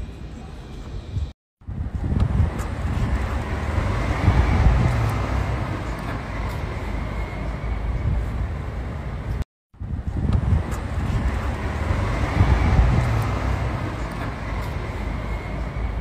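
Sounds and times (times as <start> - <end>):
wind buffeting microphone: 1.1 - 5.8, 9.8 - 16.0
car driving off: 2.0 - 7.8, 10.1 - 16.0.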